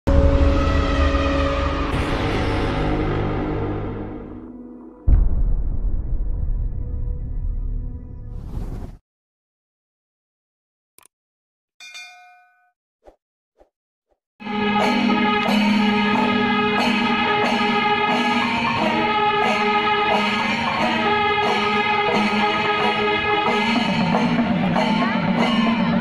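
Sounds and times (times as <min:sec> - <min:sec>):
dramatic music: 0:00.1 - 0:08.1, 0:14.4 - 0:26.0.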